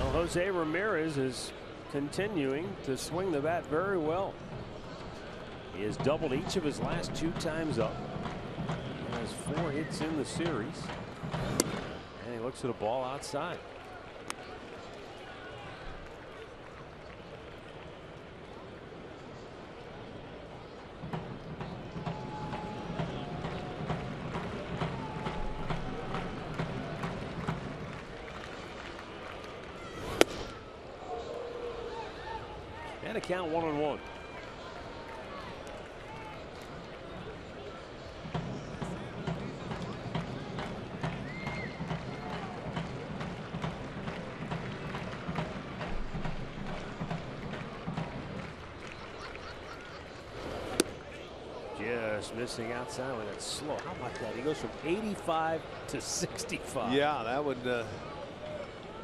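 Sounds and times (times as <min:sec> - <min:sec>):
ball smacking into catcher's mitt: 0:11.5 - 0:11.8, 0:30.0 - 0:30.6, 0:50.6 - 0:51.0
crowd murmur: 0:34.3 - 0:59.0.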